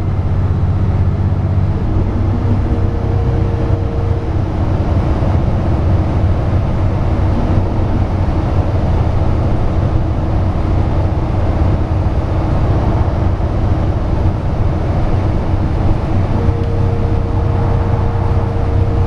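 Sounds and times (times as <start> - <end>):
bus engine drone: 0.0 - 19.0
road and tyre noise: 0.0 - 19.0.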